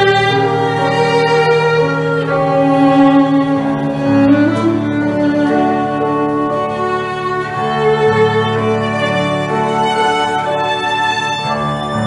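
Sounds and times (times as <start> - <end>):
digital piano low chords: 0.0 - 12.0
solo violin slow melody: 0.0 - 12.0.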